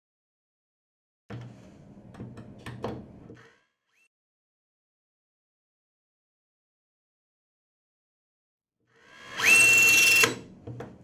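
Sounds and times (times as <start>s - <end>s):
electric screwdriver whining: 9.1s - 10.4s.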